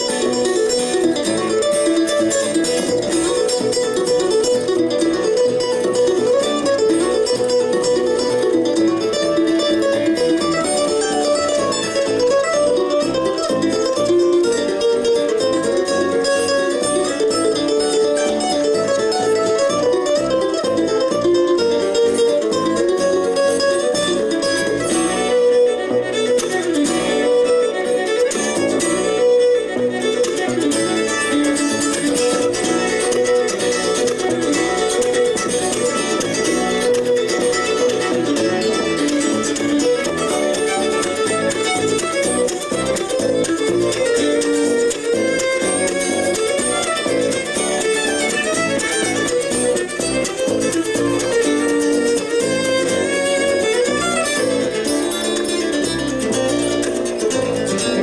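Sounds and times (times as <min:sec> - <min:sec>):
acoustic guitar: 0:00.0 - 0:58.0
fiddle: 0:00.0 - 0:58.0
mandolin: 0:00.0 - 0:58.0
upright bass: 0:00.0 - 0:58.0.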